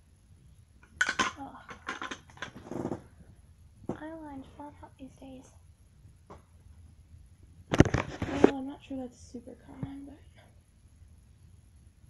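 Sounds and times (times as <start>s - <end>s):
fabric rustling against microphone: 2.5s - 3.2s, 7.7s - 8.6s.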